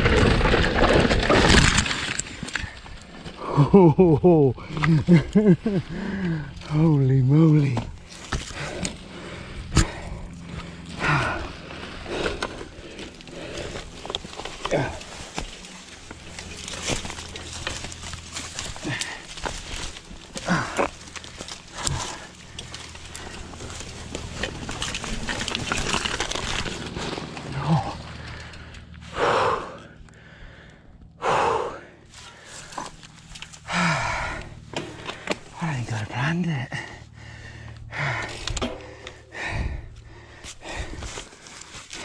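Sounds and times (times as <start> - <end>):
bike rattling and clicking: 0.0 - 31.1, 32.1 - 36.1, 36.7 - 42.0.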